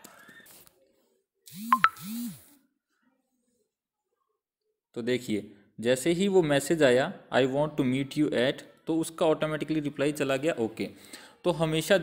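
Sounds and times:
phone message notification chime: 1.7 - 2.0.

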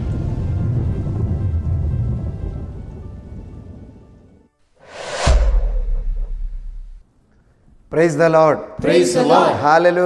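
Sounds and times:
rain: 0.0 - 2.5
thunder rumbling: 0.0 - 4.3
background music: 0.0 - 5.2.

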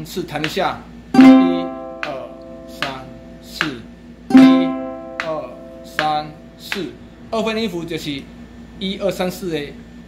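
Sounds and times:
ukulele strumming: 1.1 - 6.8.

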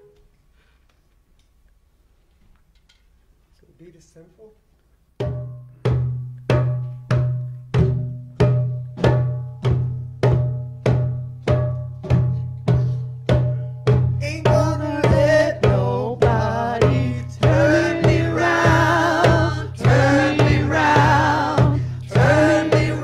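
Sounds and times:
hand drum beat: 5.2 - 23.0
voices singing: 14.2 - 23.0.

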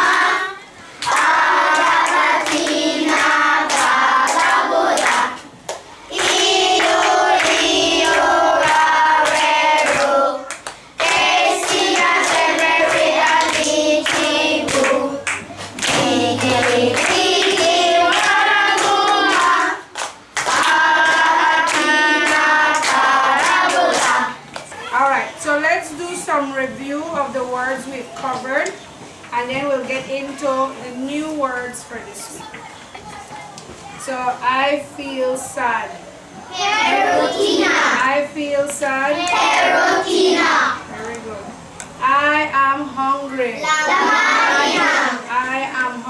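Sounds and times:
children singing together: 0.0 - 5.5, 6.1 - 24.6, 36.5 - 38.0, 39.2 - 40.9, 43.7 - 45.3
hand clapping: 1.0 - 24.7.

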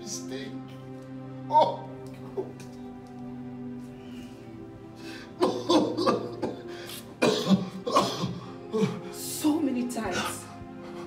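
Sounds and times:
background music: 0.0 - 11.0
person coughing: 5.4 - 9.0.

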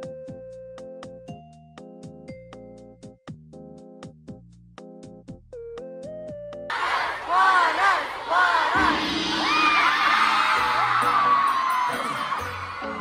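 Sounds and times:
soft keyboard music: 0.0 - 6.7
crowd screaming and cheering: 6.7 - 13.0
loud concert music: 8.8 - 13.0.

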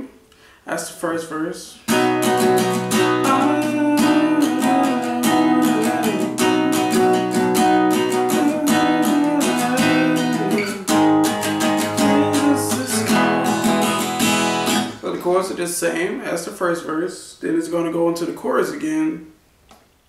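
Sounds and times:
acoustic guitar strumming: 1.9 - 15.6.

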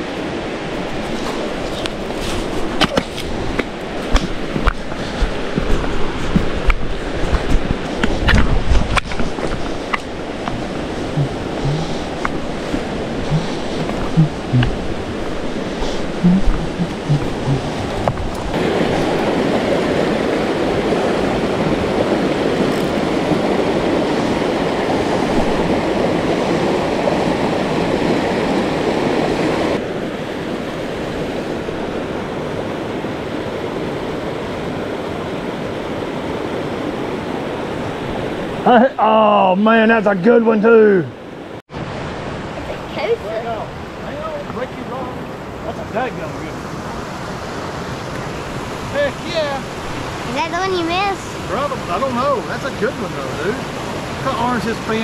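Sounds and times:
river rapids rushing: 0.0 - 38.7, 41.2 - 55.0
knocks and steps on rock: 1.2 - 14.9.

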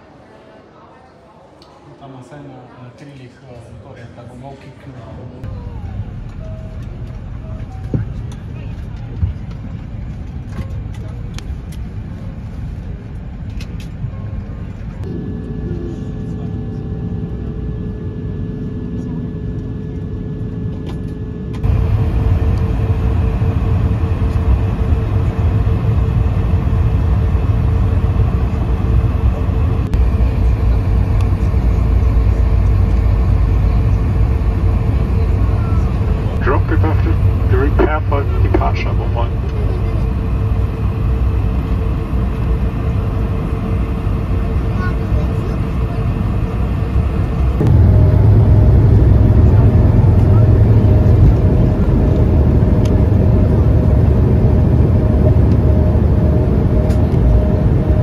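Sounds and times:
plane taxiing rumble: 3.6 - 58.0
aircraft cabin rumble: 5.4 - 58.0.

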